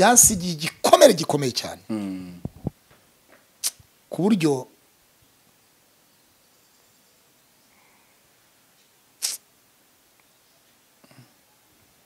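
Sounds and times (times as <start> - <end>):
quick sniff through the nose: 9.2 - 9.4.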